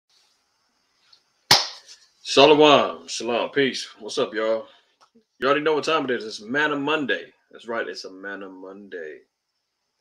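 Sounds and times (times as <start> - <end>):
sharp hand clap: 1.5 - 2.0.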